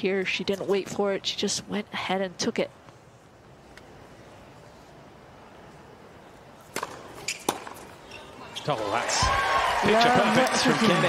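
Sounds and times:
faint court ambience: 2.7s - 11.0s
tennis racket hitting ball: 6.7s - 7.8s.

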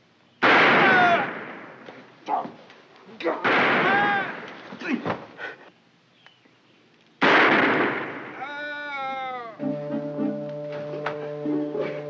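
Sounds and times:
gunshots: 0.4s - 1.9s, 3.3s - 5.0s, 7.2s - 8.5s.

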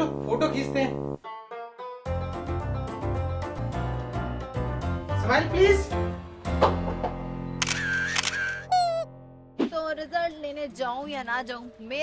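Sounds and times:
comic sound effects: 0.0s - 1.2s
background music: 0.0s - 12.0s
camera shutter click: 7.6s - 8.7s.

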